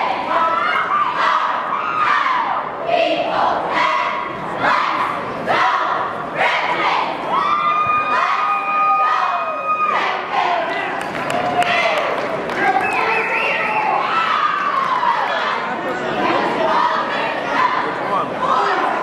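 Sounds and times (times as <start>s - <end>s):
cheer squad chanting in unison: 0.0s - 7.4s, 8.1s - 11.0s, 14.0s - 19.0s
crowd cheering: 7.3s - 15.6s.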